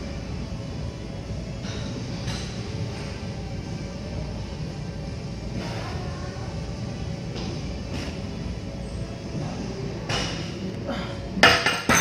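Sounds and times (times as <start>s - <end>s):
gym room rumble: 0.0s - 12.0s.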